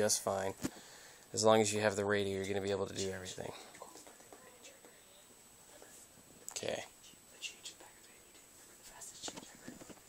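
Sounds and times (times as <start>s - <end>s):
faint high-pitched whine: 0.0s - 10.0s.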